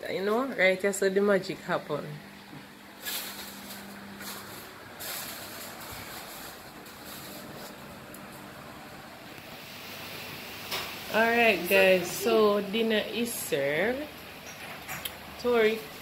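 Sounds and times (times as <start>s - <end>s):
rustling: 3.0s - 8.5s
steady hiss: 9.0s - 16.0s.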